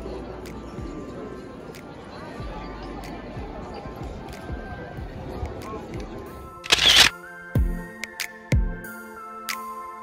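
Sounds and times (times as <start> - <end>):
many people talking: 0.0 - 8.1
faint music: 0.0 - 10.0.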